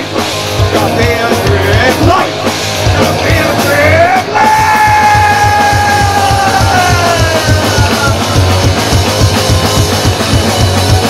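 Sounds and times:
drums: 0:00.0 - 0:11.0
electric guitar: 0:00.0 - 0:11.0
singer yelling: 0:03.0 - 0:08.6.

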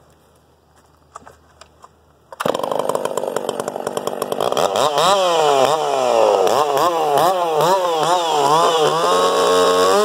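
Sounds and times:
chainsaw engine running: 0:02.4 - 0:10.0.

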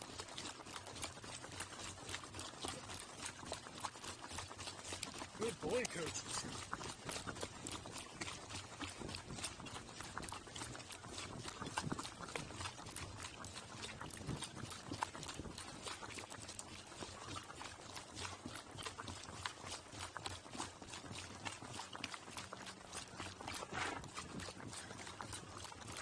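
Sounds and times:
hooves on gravel road: 0:00.0 - 0:26.0.

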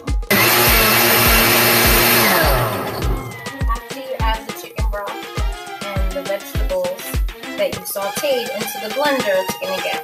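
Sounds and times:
music beat: 0:00.0 - 0:07.4
blender running: 0:00.3 - 0:03.7.

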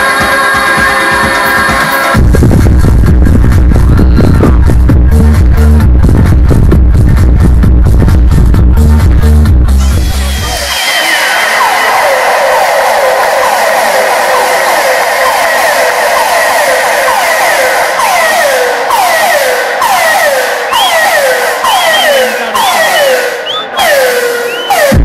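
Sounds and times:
falling synth sweeps: 0:10.5 - 0:25.0.

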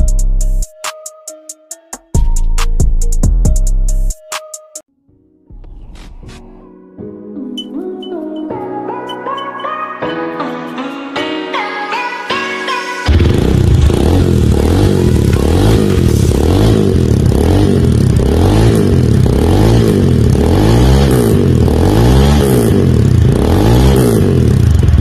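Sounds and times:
motorcycle engine revving: 0:13.1 - 0:25.0.

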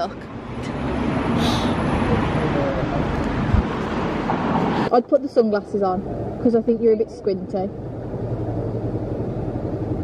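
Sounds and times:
street traffic noise: 0:00.0 - 0:10.0
vehicle passing with low rumble: 0:00.0 - 0:10.0.

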